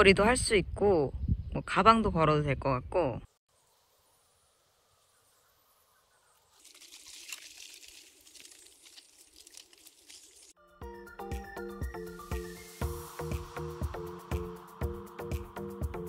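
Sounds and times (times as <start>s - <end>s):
music with a beat: 10.8s - 16.0s.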